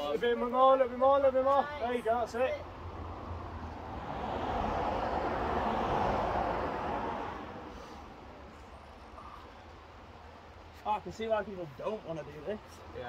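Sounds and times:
vehicle passing on distant road: 2.2s - 9.0s.

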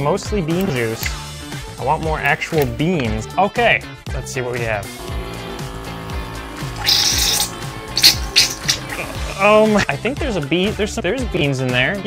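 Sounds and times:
background music: 0.0s - 12.0s
sauce squirting from tube: 6.6s - 9.2s.

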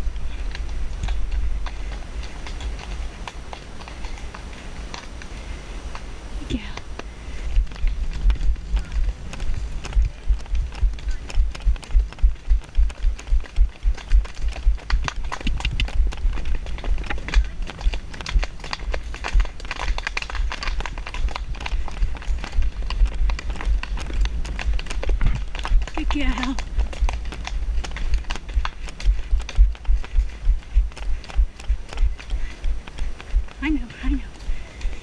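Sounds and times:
low microphone rumble: 0.0s - 35.0s
pony hoofbeats on dirt: 0.0s - 35.0s.

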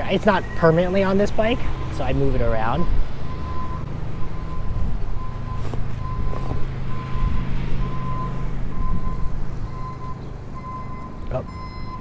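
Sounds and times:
backup alarm beeping: 3.2s - 12.0s.

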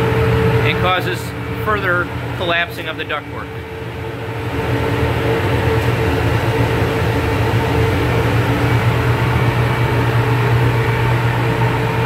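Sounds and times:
vacuum collector humming and whining: 0.0s - 12.0s.

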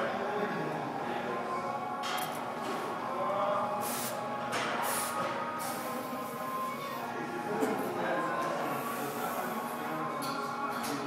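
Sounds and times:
faint background music: 0.0s - 11.0s
short hissing sounds: 3.8s - 4.2s, 4.8s - 6.1s.

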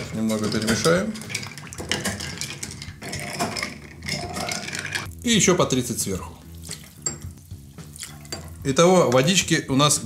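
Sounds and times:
spoon clinking ice in glass: 0.3s - 5.1s, 6.7s - 7.4s, 8.1s - 8.6s.

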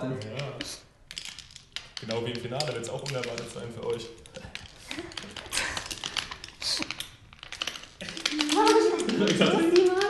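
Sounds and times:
person speaking: 8.0s - 10.0s.

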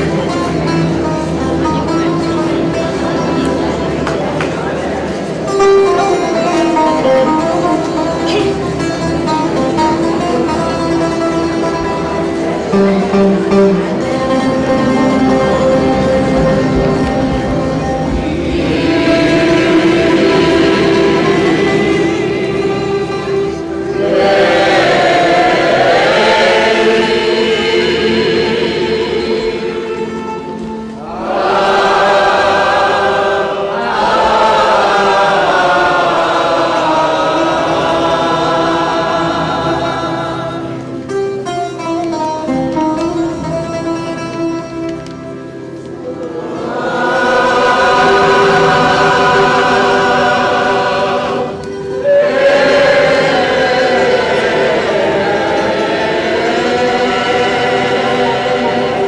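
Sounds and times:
mixed choir singing in harmony: 0.0s - 41.2s, 46.1s - 59.0s.

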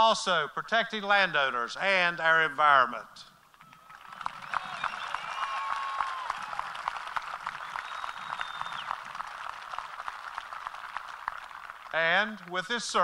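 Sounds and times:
audience applauding: 3.5s - 12.6s.

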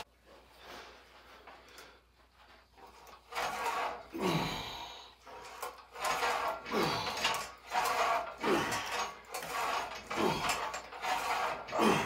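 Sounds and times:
cable machine rasping: 1.6s - 12.0s.

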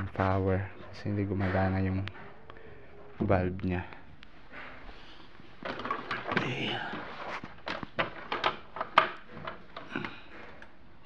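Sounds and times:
phone handling rustling and knocks: 5.6s - 10.2s.

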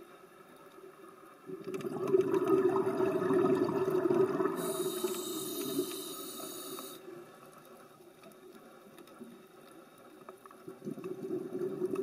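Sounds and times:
bubbling exhaled air underwater: 1.5s - 6.9s, 10.6s - 12.0s
air hissing through regulator: 4.6s - 7.0s.

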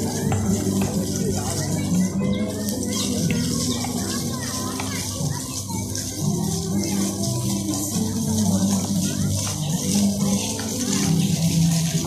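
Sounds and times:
children's voices: 0.0s - 12.0s
crowd chatter: 0.0s - 12.0s.

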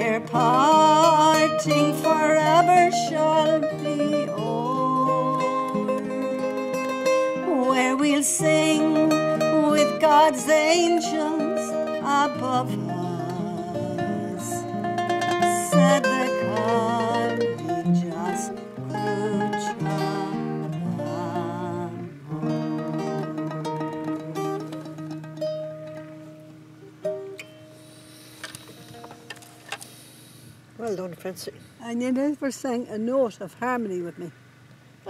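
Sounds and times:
mandolin: 0.0s - 29.8s
acoustic guitar: 0.0s - 32.6s.

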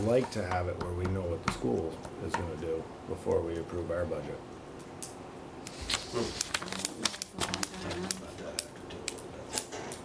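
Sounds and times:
paper clicks and rustles: 5.7s - 8.7s.

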